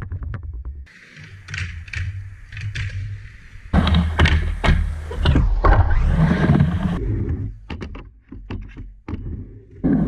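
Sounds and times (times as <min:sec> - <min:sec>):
skateboard wheels rolling: 0:00.9 - 0:07.7, 0:09.2 - 0:10.0.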